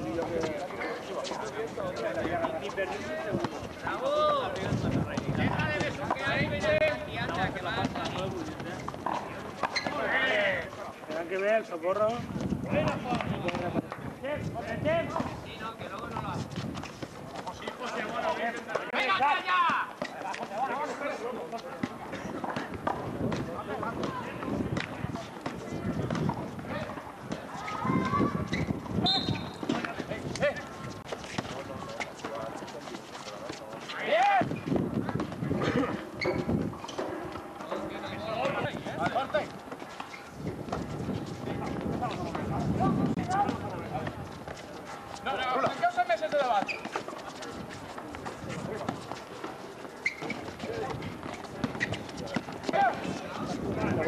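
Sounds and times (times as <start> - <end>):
sneakers running on concrete: 12.2 - 54.0.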